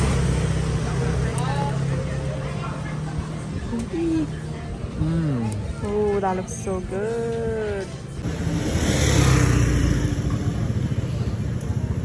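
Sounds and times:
vehicle engine passing by: 0:08.2 - 0:12.0.

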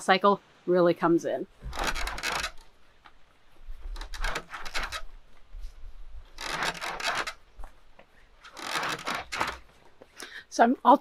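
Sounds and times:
hide rasping on wire cable: 0:01.6 - 0:10.1.

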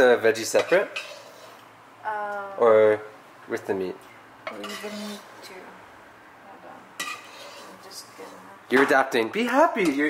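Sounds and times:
utensil scraping meat in frying pan: 0:00.4 - 0:01.7, 0:04.5 - 0:05.4, 0:06.9 - 0:08.5.

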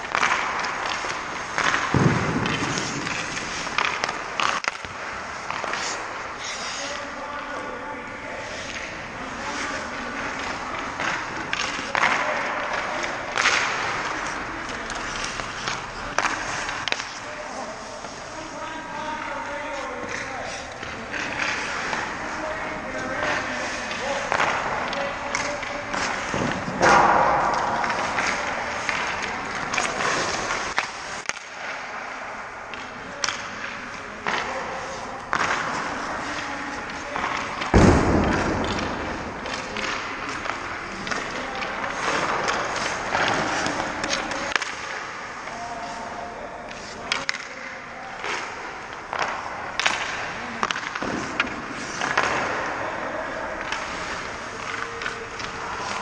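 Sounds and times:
skate blades scraping on ice: 0:00.0 - 0:47.4, 0:48.1 - 0:56.0
sticks and pucks clacking: 0:00.0 - 0:56.0
loud impact: 0:01.7 - 0:03.8, 0:37.6 - 0:39.6.

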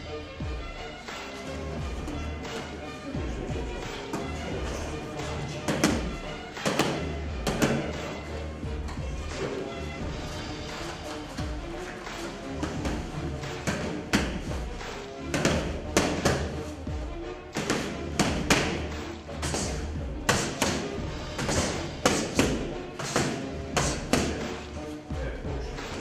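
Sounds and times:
background music: 0:00.0 - 0:26.0
boxing gloves punching mitts: 0:01.1 - 0:24.8.

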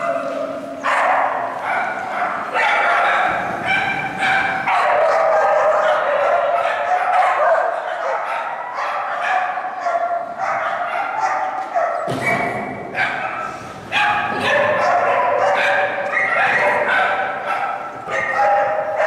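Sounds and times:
dog barking rapidly: 0:00.0 - 0:19.0.

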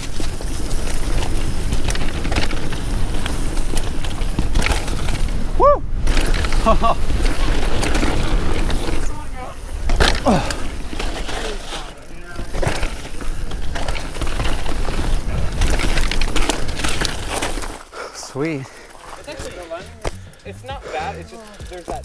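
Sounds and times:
bike tyre noise on dirt: 0:00.0 - 0:22.0.

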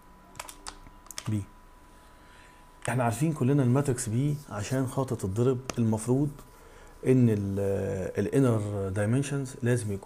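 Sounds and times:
computer keyboard typing: 0:00.3 - 0:01.4.

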